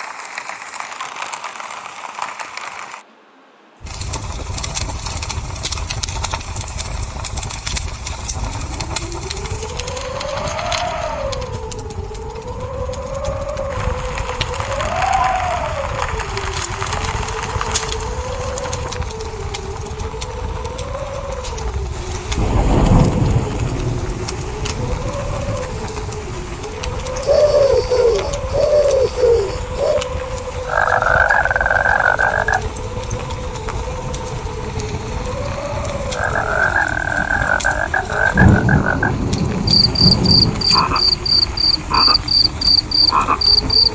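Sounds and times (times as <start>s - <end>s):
wavering whistling tone: 8.3s - 43.9s.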